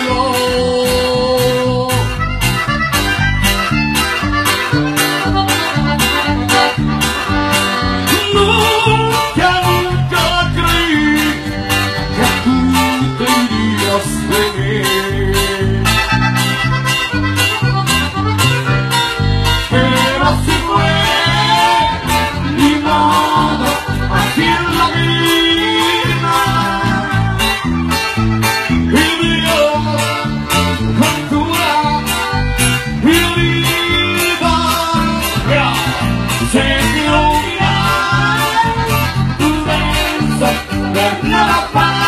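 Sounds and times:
bass: 0:00.0 - 0:42.0
live band music: 0:00.0 - 0:42.0
sustained melody notes: 0:00.0 - 0:42.0
strummed stringed instrument: 0:01.7 - 0:42.0.

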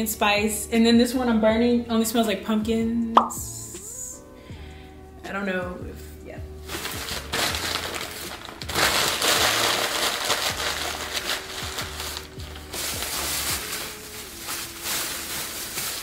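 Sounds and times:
soft background music: 0:00.0 - 0:16.0
plastic bag rustling: 0:06.6 - 0:16.0
tissue paper crinkling: 0:06.6 - 0:16.0.

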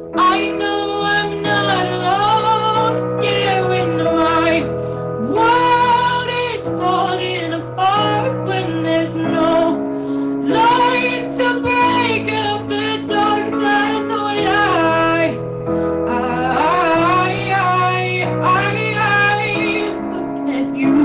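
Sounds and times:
woman singing slow song: 0:00.0 - 0:15.4, 0:16.1 - 0:21.0
instrumental backing chords: 0:00.0 - 0:21.0.

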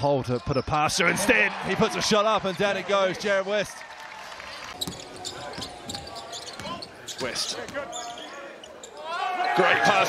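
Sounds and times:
murmur of indoor crowd: 0:04.4 - 0:10.0.

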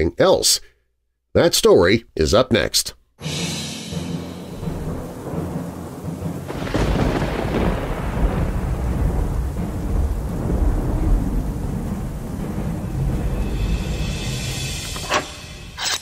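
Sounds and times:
rain hissing: 0:03.2 - 0:15.8
thunder clap and rumble: 0:04.3 - 0:15.0.

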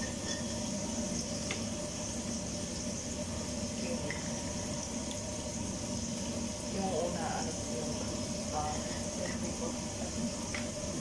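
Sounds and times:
water running: 0:00.0 - 0:11.0.

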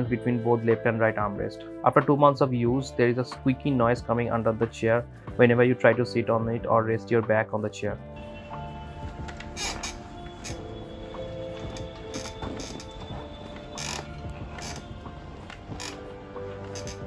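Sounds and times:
background music: 0:00.0 - 0:17.0
chair creaking and squeaking: 0:08.5 - 0:17.0.

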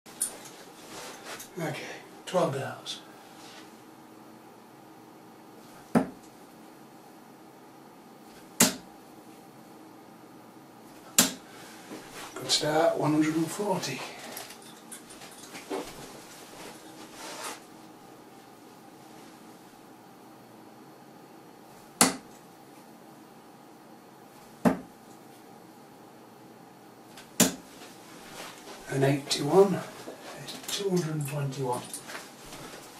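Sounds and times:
darts thudding into dartboard: 0:05.9 - 0:06.2, 0:08.5 - 0:08.9, 0:11.1 - 0:11.4, 0:22.0 - 0:22.3, 0:24.6 - 0:24.9, 0:27.4 - 0:27.6.

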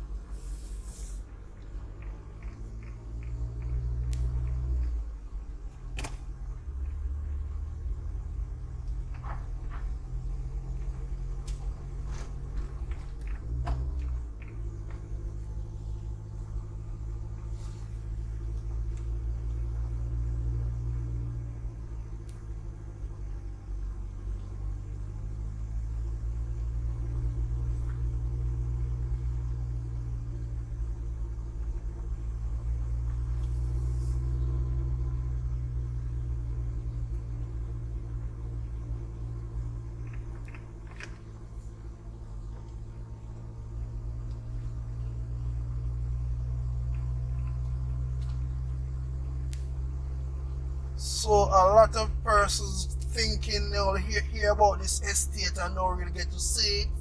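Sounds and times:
car interior road rumble: 0:00.0 - 0:57.0.

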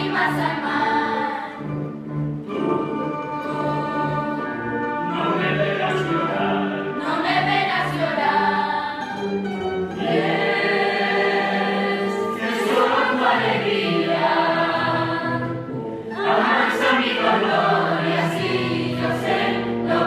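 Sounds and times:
choir singing held notes: 0:00.0 - 0:09.1, 0:09.9 - 0:20.0.

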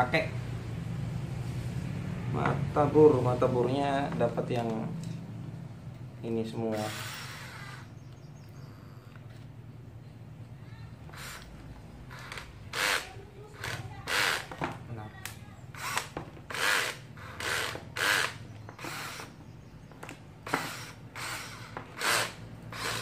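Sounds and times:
cordless drill short bursts: 0:06.7 - 0:07.9, 0:11.1 - 0:11.5, 0:12.1 - 0:14.6, 0:15.7 - 0:19.3, 0:20.4 - 0:23.0.

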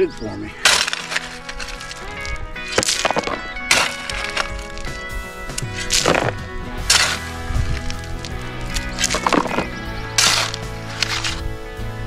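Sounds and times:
background music: 0:00.0 - 0:12.0
shovel scraping crushed rock: 0:00.5 - 0:11.5.

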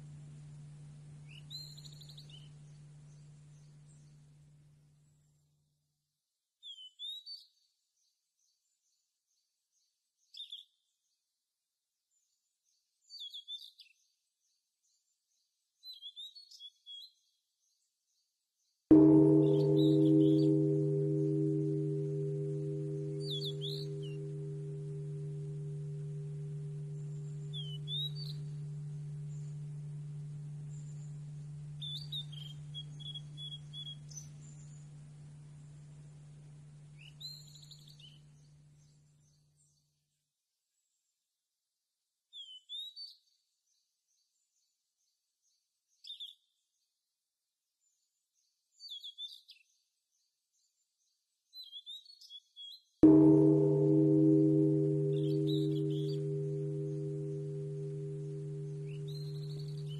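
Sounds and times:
deep metal gong chime: 0:18.9 - 0:36.8, 0:53.0 - 0:59.9.

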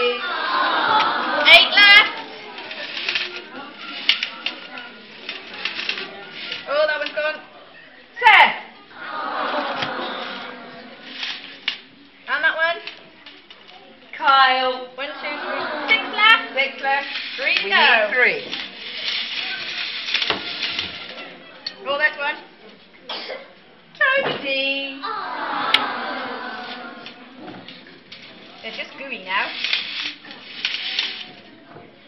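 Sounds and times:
children chattering: 0:00.0 - 0:32.0
eggs rattling in a sieve: 0:01.3 - 0:07.4, 0:16.2 - 0:21.4, 0:28.0 - 0:31.6
eggs clattering in a sieve: 0:01.6 - 0:07.4.

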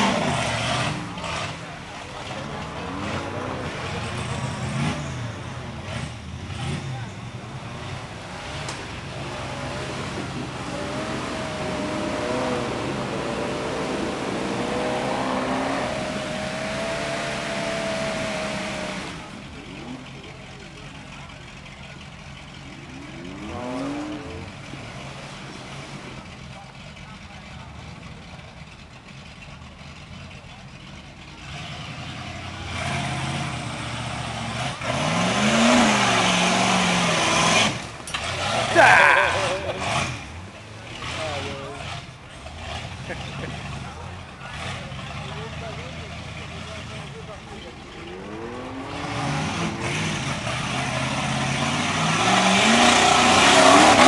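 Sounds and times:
buggy engine revving: 0:00.0 - 0:54.0.

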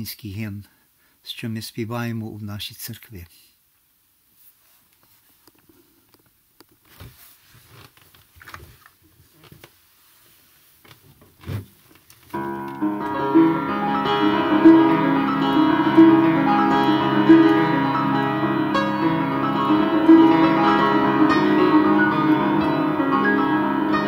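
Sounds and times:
soft knocks and rustles: 0:05.0 - 0:12.4
piano playing a hymn: 0:12.4 - 0:24.0.

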